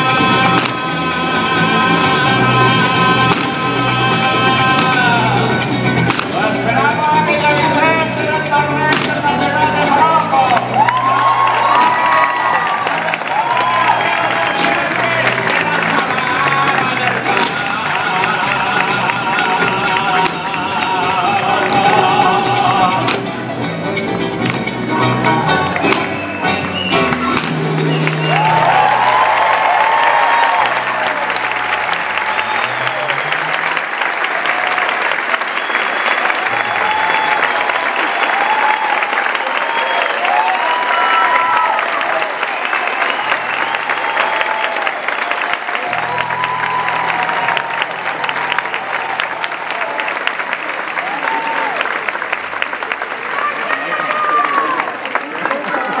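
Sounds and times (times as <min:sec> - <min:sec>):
audience applauding: 0:00.0 - 0:56.0
shouts and whoops: 0:10.0 - 0:17.2, 0:28.0 - 0:33.3, 0:34.3 - 0:50.3, 0:50.9 - 0:52.0, 0:53.2 - 0:56.0.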